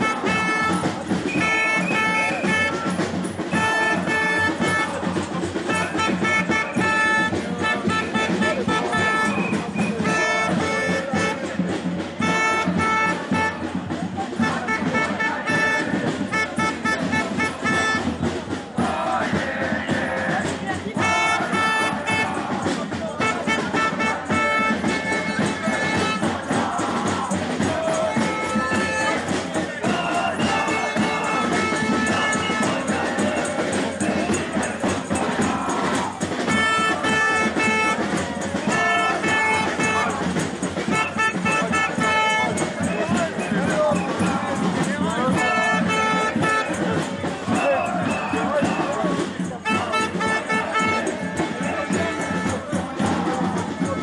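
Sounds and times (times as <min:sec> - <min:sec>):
horn tooting short notes: 0:00.0 - 0:11.6, 0:14.4 - 0:18.3, 0:21.0 - 0:40.2, 0:40.8 - 0:54.0
marching crowd din: 0:00.0 - 0:54.0.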